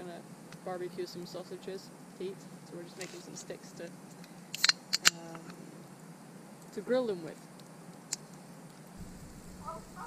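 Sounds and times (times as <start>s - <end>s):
distant person howling: 9.6s - 10.0s.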